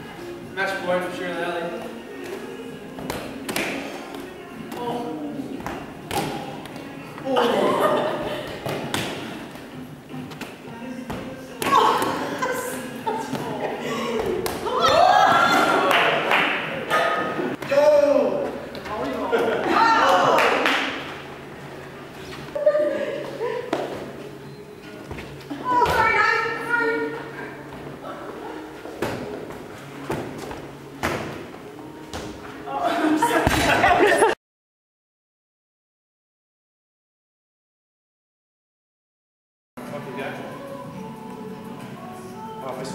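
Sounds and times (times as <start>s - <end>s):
ball thuds in large hall: 2.2s - 6.9s, 8.2s - 12.4s, 13.1s - 21.1s, 25.0s - 26.5s, 28.8s - 32.5s, 33.2s - 34.2s
voices and laughter: 7.2s - 8.6s, 11.7s - 15.9s, 19.0s - 20.4s.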